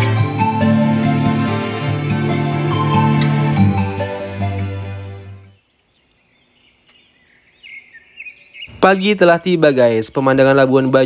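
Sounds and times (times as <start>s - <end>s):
background music: 0.0s - 5.6s
birds chirping: 5.4s - 11.0s.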